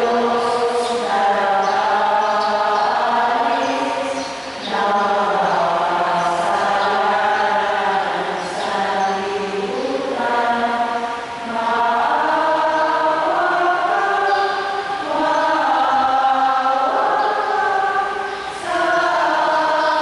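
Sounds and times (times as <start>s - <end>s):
voices singing a hymn: 0.0s - 20.0s.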